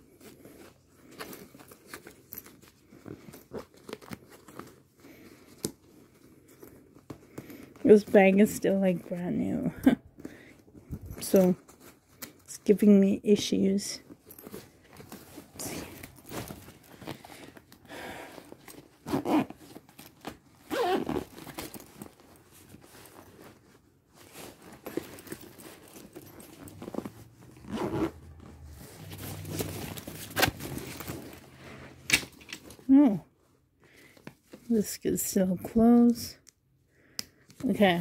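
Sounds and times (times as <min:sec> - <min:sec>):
fabric rustling and scraping: 0:00.0 - 0:36.0
zipper pulls: 0:14.0 - 0:23.6, 0:24.2 - 0:33.0.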